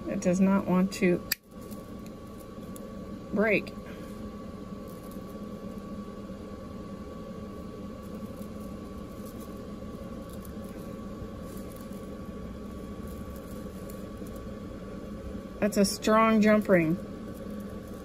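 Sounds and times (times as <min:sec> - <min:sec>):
appliance hum with high tone: 0:00.0 - 0:18.0.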